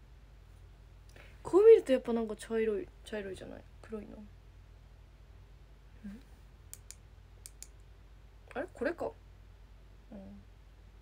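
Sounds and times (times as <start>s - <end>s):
faint low hum: 0.0s - 11.0s
person humming briefly: 6.0s - 6.4s, 10.1s - 10.4s
light sharp clicks: 6.7s - 7.9s.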